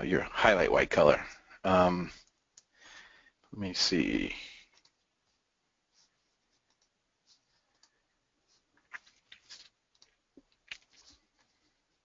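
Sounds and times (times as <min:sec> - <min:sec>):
computer mouse clicks: 0:06.6 - 0:07.0.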